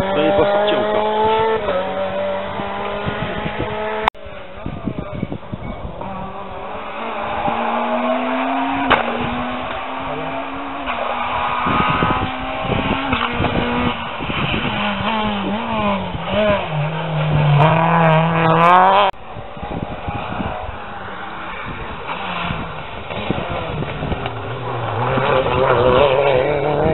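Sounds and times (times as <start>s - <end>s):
rally car engines at full throttle: 0.0s - 26.9s.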